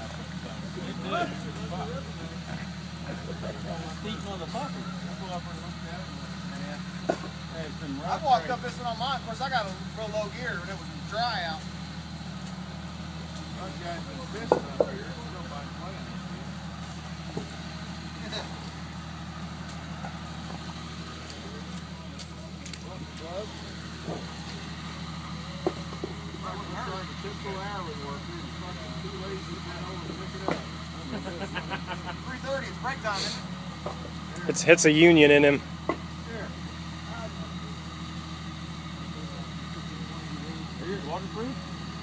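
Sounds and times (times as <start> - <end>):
vehicle engine idling: 0.0 - 42.0.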